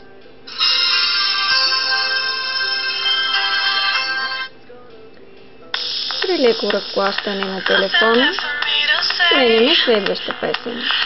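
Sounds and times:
music from small phone speaker: 0.0 - 11.0.

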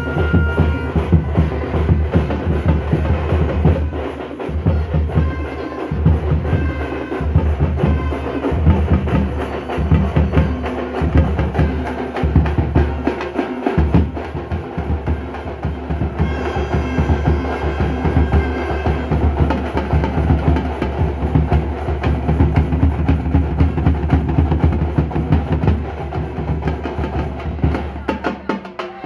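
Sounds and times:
frame drums beaten with sticks: 0.0 - 29.0.

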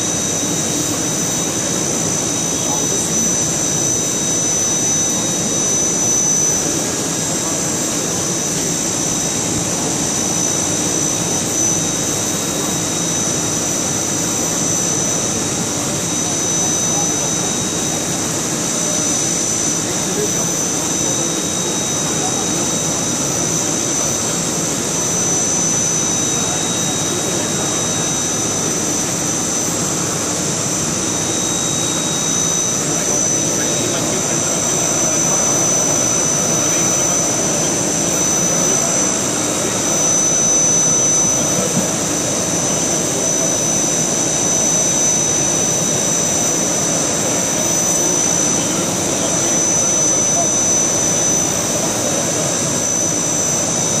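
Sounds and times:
machine spindle high whine: 0.0 - 54.0.

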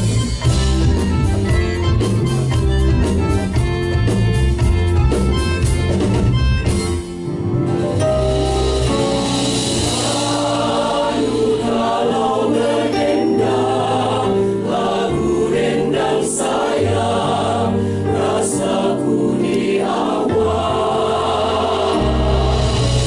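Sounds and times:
mixed choir singing in harmony: 9.2 - 23.0.

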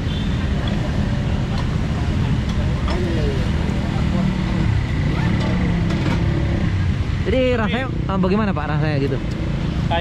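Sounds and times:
motorbike engines: 0.0 - 10.0
road traffic rumble: 0.0 - 10.0.

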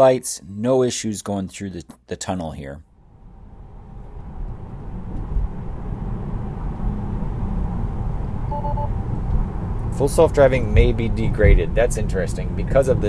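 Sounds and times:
tyre and road noise in car: 3.2 - 13.0
two-note alert chime: 8.5 - 8.9.

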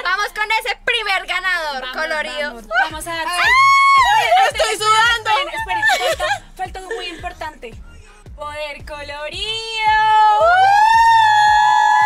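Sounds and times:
music with steady drum beat: 2.7 - 12.0.

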